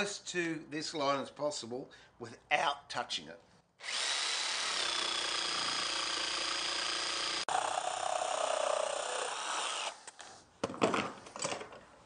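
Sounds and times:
jigsaw cutting wood: 3.8s - 10.0s.

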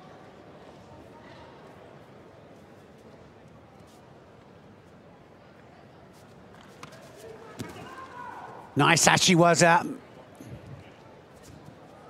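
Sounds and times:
faint voices: 8.8s - 10.0s.

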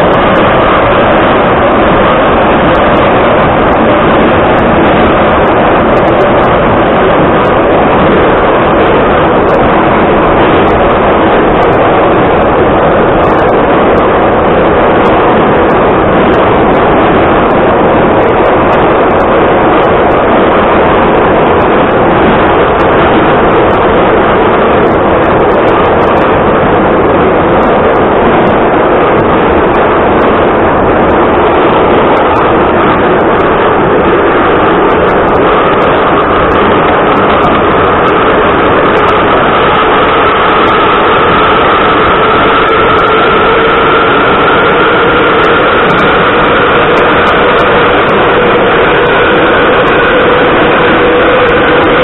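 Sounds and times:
faint steady whine: 0.0s - 52.0s
metro car rumbling in tunnel: 0.0s - 52.0s.

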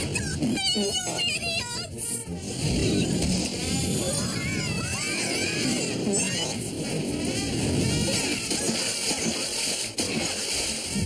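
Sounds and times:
busy cartoon music: 0.0s - 11.0s.

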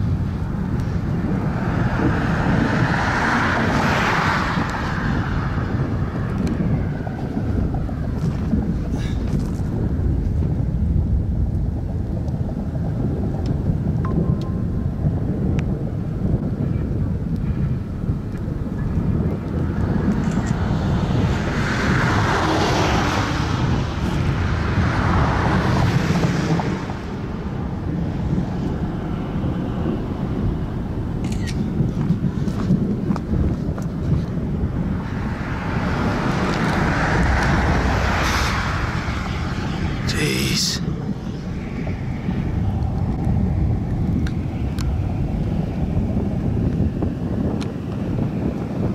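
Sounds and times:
wind buffeting microphone: 0.0s - 48.9s.

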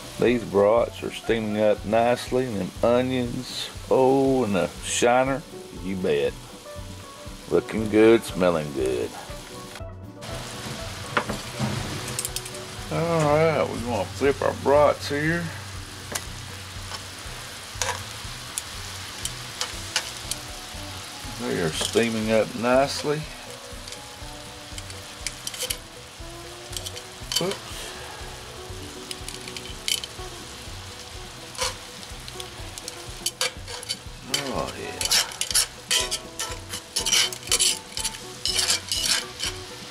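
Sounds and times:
liquid sizzling and bubbling: 0.0s - 39.9s
metal tongs clicking: 24.8s - 25.8s, 26.7s - 27.6s, 29.0s - 30.2s, 31.5s - 39.7s.

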